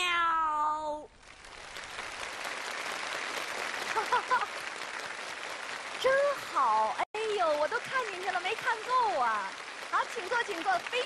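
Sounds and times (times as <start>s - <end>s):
audience applause: 1.2s - 11.0s.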